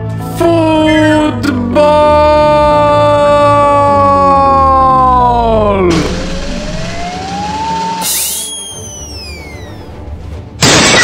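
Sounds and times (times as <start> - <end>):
boy yelling: 0.5 - 5.8
rising whistle-like tone: 6.3 - 9.9
hiss with falling whistle tones: 7.2 - 9.8.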